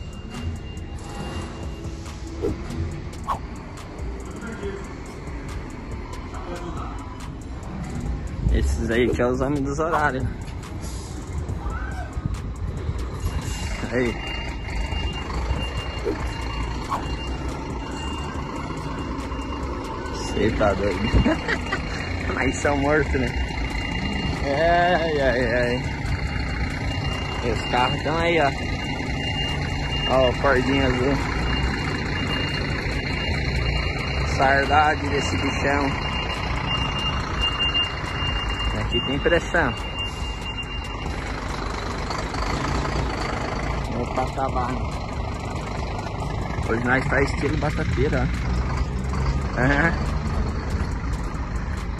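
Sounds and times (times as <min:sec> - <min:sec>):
reversing alarm beeping: 0:00.0 - 0:03.4, 0:13.0 - 0:45.6
truck engines rumbling: 0:00.0 - 0:51.9.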